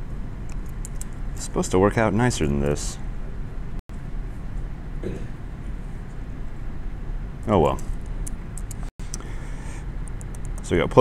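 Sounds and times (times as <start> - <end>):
room and microphone noise: 0.0 - 11.0.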